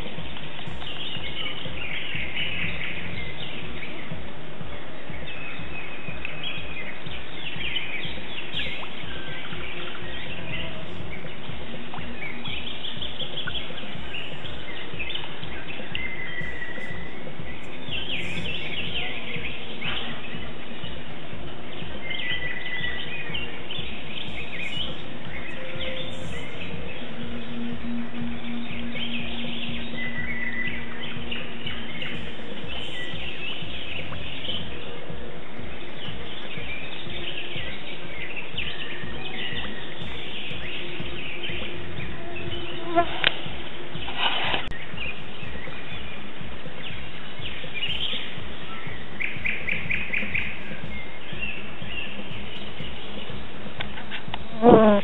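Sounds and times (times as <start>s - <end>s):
background music: 0.0s - 55.0s
small birds chirping: 0.0s - 55.0s.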